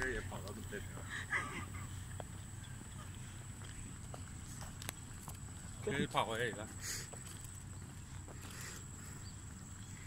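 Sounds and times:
jogging footsteps on pavement: 0.0 - 10.0
low steady rumble: 0.0 - 10.0.

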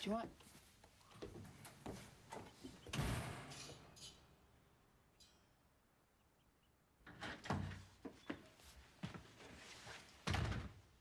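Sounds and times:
door shutting with thud: 2.9 - 3.6.

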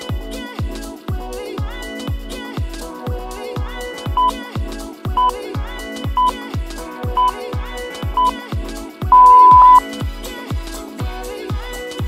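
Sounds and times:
interval timer beeps: 4.2 - 4.4, 5.2 - 5.4, 7.2 - 7.4, 9.1 - 9.8
electronic dance music: 9.1 - 9.8.

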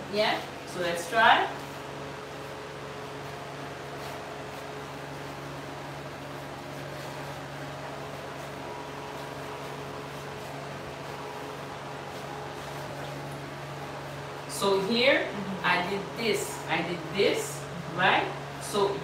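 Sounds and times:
motor hum: 0.0 - 19.0.

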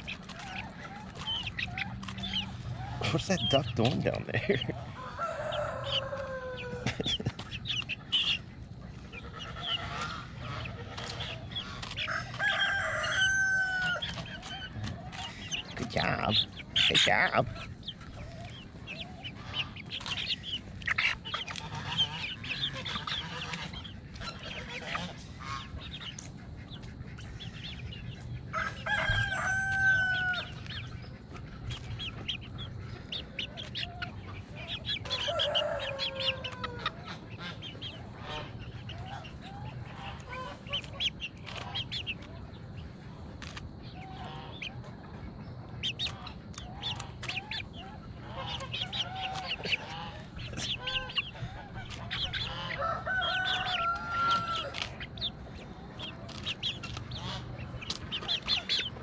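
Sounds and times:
hens clucking: 0.0 - 59.0
rooster crowing: 4.9 - 6.9, 12.0 - 14.2, 28.5 - 30.6, 35.1 - 37.0, 52.5 - 54.9.

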